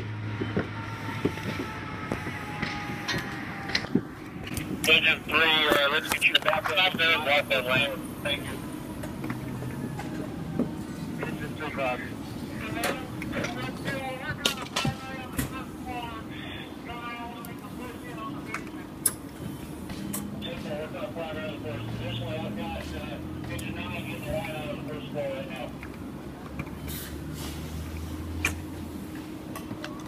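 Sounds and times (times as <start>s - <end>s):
indistinct voices: 0.0s - 25.9s
steady low hum: 0.0s - 30.0s.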